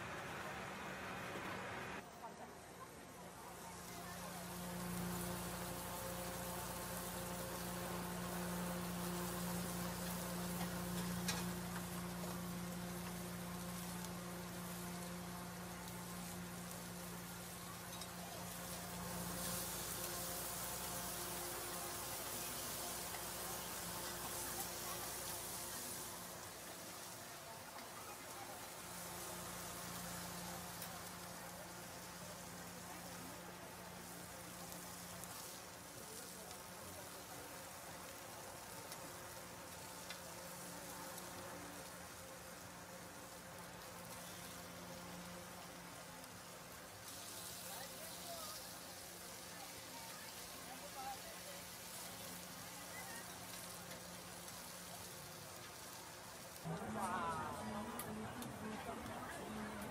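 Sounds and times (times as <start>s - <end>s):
low even hum: 0.0s - 2.4s, 3.0s - 47.0s
meat sizzling on a griddle: 2.6s - 59.9s.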